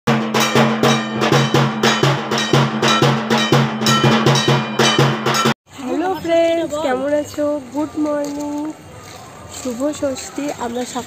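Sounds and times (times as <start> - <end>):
brass gong ringing: 0.1 - 5.6
drums beaten in fast rhythm: 0.1 - 5.6.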